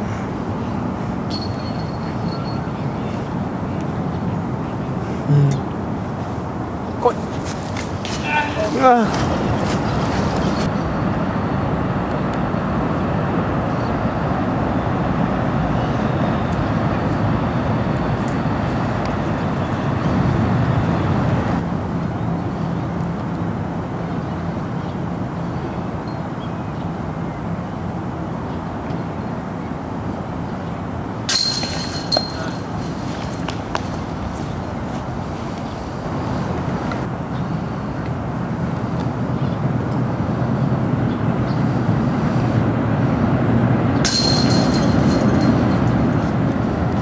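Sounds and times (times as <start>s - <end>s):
low background rumble: 19.5s - 22.6s.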